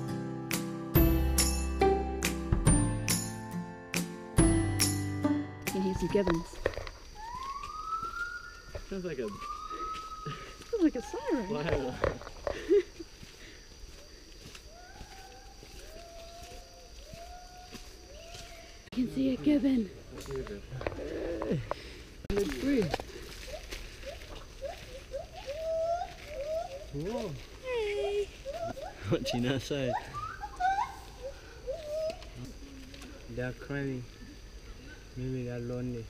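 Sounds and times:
gibbons whooping: 0:05.7 - 0:12.0, 0:23.5 - 0:33.0.

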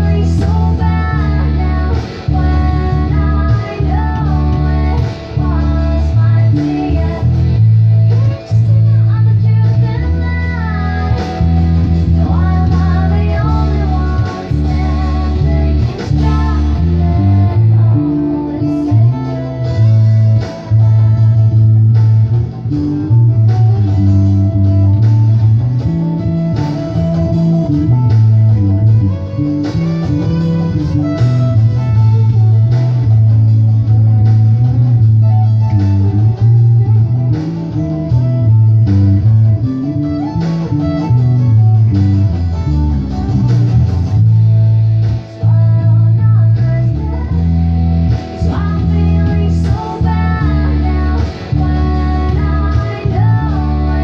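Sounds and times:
electric bass guitar playing: 0:00.0 - 0:54.0
recorded song with drums: 0:00.0 - 0:54.0.

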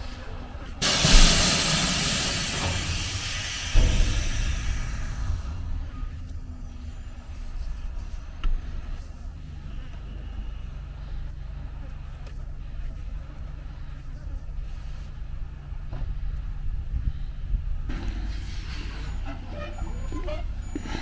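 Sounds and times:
diesel truck engine idling: 0:00.0 - 0:21.0
engine and mechanical noise: 0:00.0 - 0:21.0.

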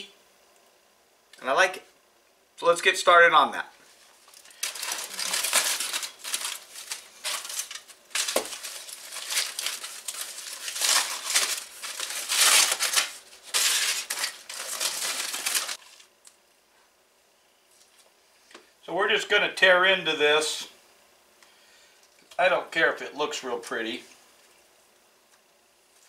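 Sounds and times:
aluminium foil crinkling: 0:03.8 - 0:16.4.

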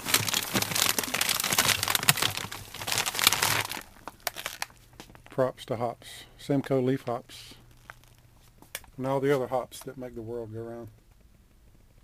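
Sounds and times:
plastic bag crinkling: 0:00.0 - 0:05.4, 0:07.6 - 0:09.7.

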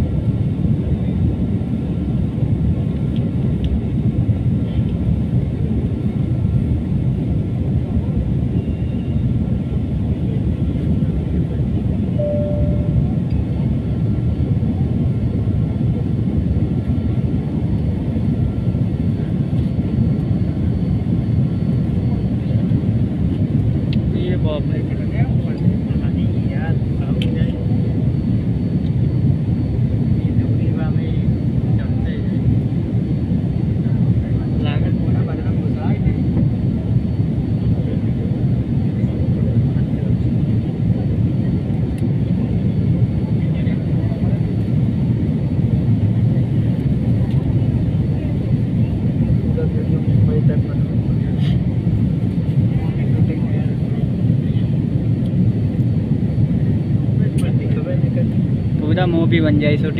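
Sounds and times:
jet engine roar: 0:00.0 - 0:59.9.

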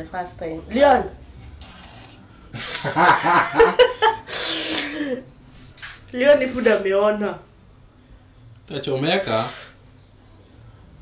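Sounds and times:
woman laughing breathily: 0:02.6 - 0:05.3
woman breathing: 0:04.2 - 0:05.3.

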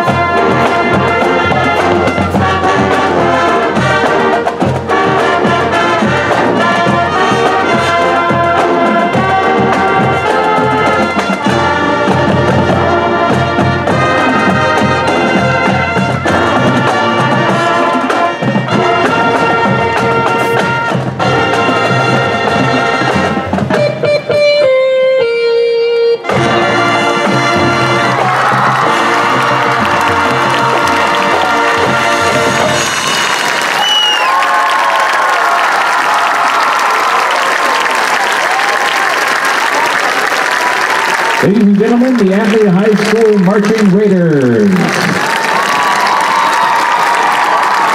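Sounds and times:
crowd applauding and cheering: 0:00.0 - 0:15.7, 0:16.4 - 0:23.2, 0:26.4 - 0:47.9
marching band playing: 0:00.0 - 0:47.9.

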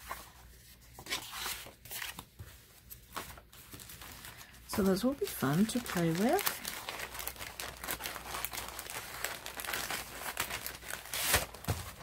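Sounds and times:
paper rustling and sliding: 0:00.0 - 0:04.9.

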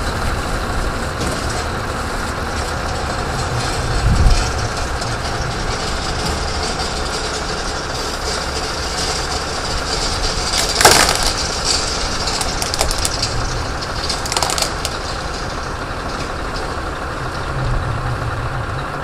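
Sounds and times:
heavy truck engine under load: 0:00.0 - 0:19.0
rumbling and clanking: 0:00.0 - 0:19.0.

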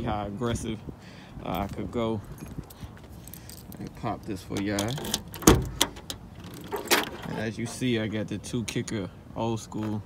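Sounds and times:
key turning in trunk lock: 0:04.5 - 0:07.4
trunk latch clunk: 0:04.6 - 0:07.4
trunk lid clicks: 0:04.6 - 0:07.4.

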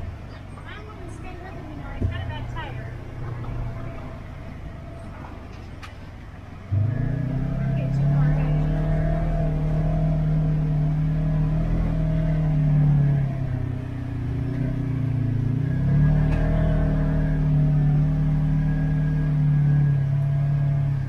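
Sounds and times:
vehicle engine running inside cab: 0:00.0 - 0:21.0.

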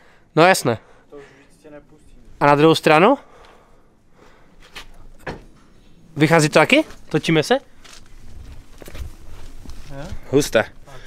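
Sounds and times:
handling rustling: 0:06.4 - 0:10.3.

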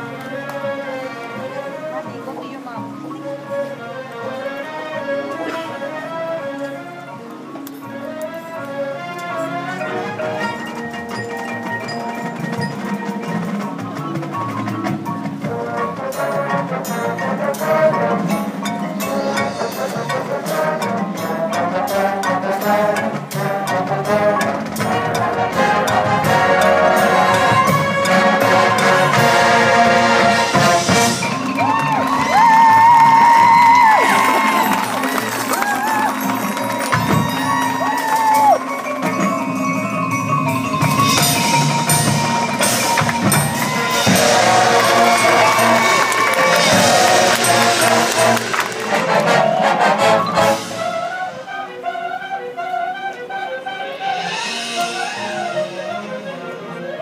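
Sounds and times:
marching band playing: 0:00.0 - 0:57.0.

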